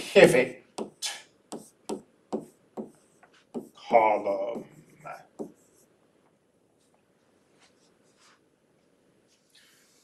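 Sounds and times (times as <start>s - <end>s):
man speaking: 0.0s - 1.2s, 3.8s - 5.3s.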